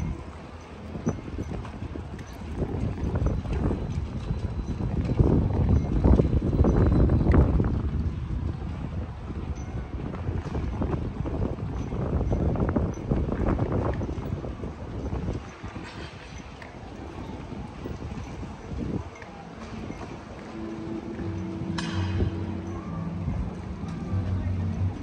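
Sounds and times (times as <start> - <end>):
wind rumble on microphone: 0.0 - 25.0.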